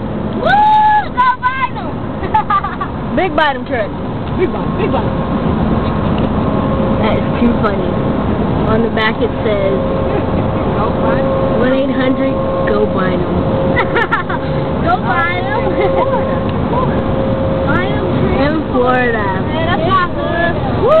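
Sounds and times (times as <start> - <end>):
car road and engine noise: 0.0 - 21.0
people talking: 1.0 - 5.2, 7.0 - 8.0, 8.6 - 21.0
steady tone: 1.3 - 21.0
people laughing: 2.2 - 3.0, 13.7 - 14.6, 15.3 - 16.9.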